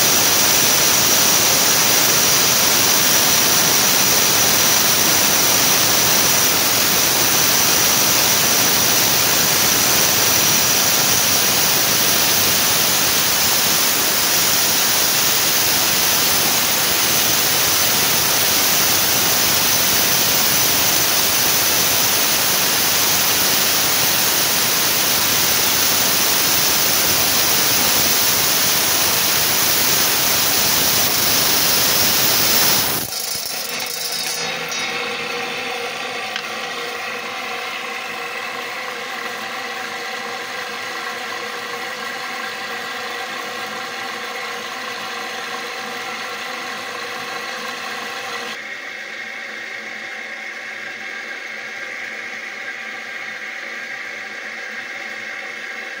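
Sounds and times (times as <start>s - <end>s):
saw grinding through stone: 0.0s - 38.5s
saw humming with a whine: 0.0s - 56.0s.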